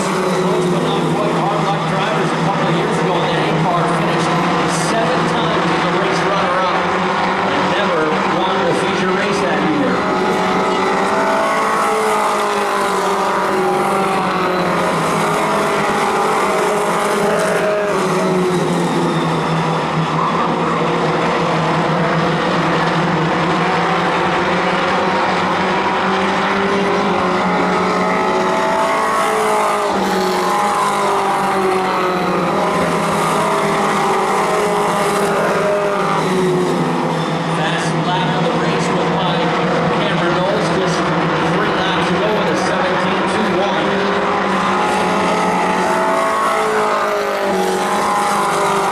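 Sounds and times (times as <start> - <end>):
race car engines passing: 0.0 - 48.9.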